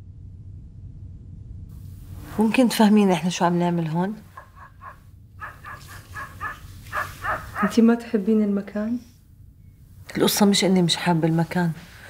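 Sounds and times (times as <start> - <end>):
low steady hum: 0.0 - 12.0
high-pitched animal calls: 4.3 - 8.1.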